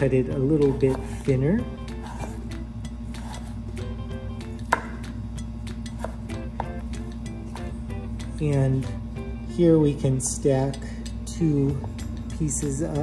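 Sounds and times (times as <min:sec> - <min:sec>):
background music: 0:00.0 - 0:13.0
knife slicing potato on board: 0:00.3 - 0:03.8, 0:04.6 - 0:05.2, 0:05.8 - 0:07.6.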